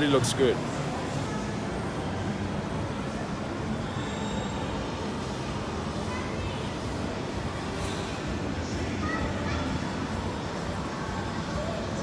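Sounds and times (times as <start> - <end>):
shopping mall ambience: 0.0 - 12.0.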